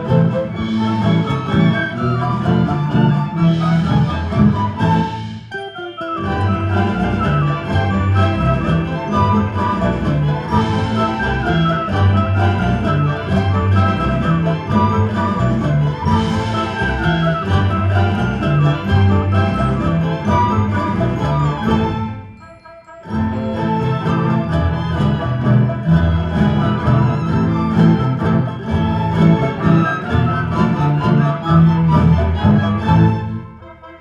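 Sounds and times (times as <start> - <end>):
orchestra playing strings and woodwinds: 0.0 - 34.0.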